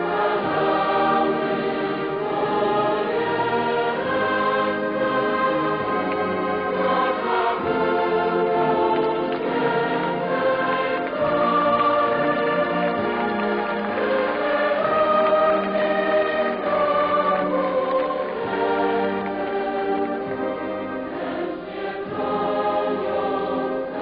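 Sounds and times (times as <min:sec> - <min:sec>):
choir singing a hymn: 0:00.0 - 0:24.0.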